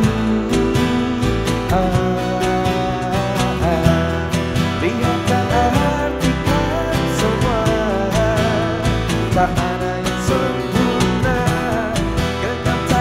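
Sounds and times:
man singing: 0.0 - 13.0
strummed acoustic guitars: 0.0 - 13.0.

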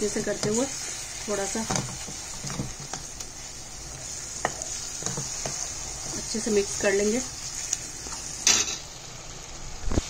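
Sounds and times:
sauce sizzling in a frying pan: 0.0 - 10.0
wooden spatula scraping pan: 3.9 - 8.2.

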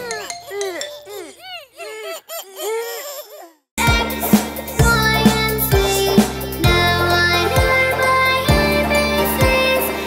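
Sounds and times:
upbeat children's song: 3.8 - 10.0.

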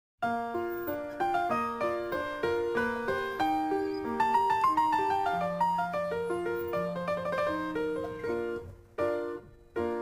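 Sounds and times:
piano music: 0.2 - 10.0.

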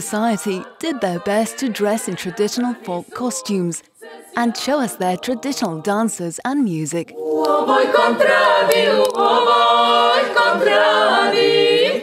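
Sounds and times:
women singing a cappella in harmony: 0.0 - 6.4, 7.0 - 12.0.

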